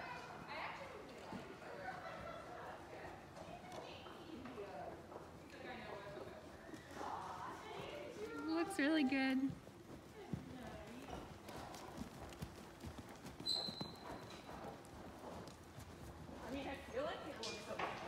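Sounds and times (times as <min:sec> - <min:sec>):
horse hoofbeats on sand: 0:00.0 - 0:18.0.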